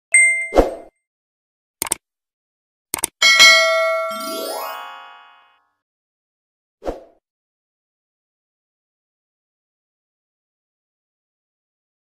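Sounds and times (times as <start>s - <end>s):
bell-like ding: 0.2s - 0.9s, 3.2s - 5.6s
mouse clicks: 3.0s - 3.2s
short chime: 3.2s - 5.6s.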